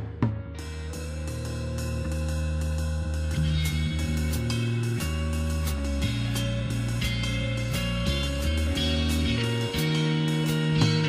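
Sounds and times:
drum kit beat: 0:00.0 - 0:11.0
guitars: 0:00.0 - 0:11.0
held bass notes: 0:00.0 - 0:11.0.

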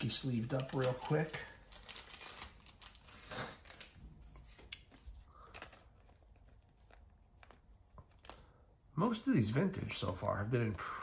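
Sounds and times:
plastic card sleeve rustling: 0:00.0 - 0:08.5.

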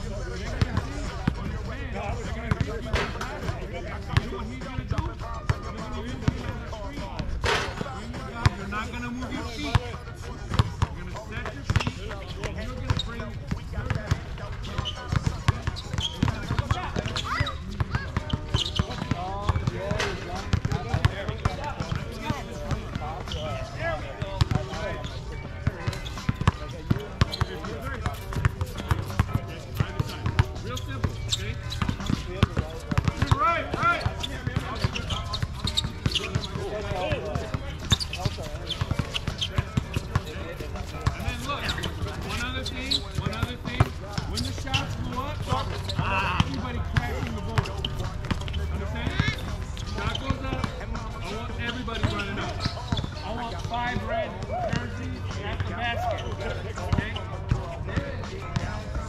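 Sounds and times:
basketball bouncing on hard court: 0:31.8 - 0:44.8.

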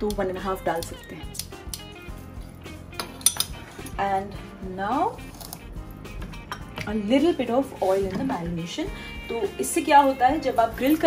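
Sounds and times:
soft background music: 0:00.0 - 0:11.0
metallic clinks: 0:03.0 - 0:03.9.

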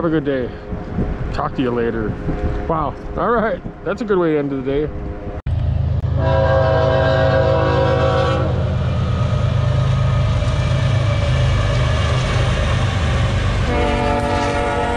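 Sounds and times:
diesel locomotives rumbling: 0:00.0 - 0:14.9
train air horn blast: 0:06.1 - 0:08.8, 0:13.6 - 0:14.9.

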